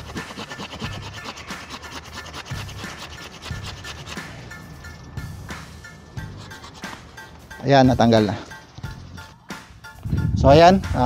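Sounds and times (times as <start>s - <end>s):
hand saw cutting wood: 0.0s - 9.4s.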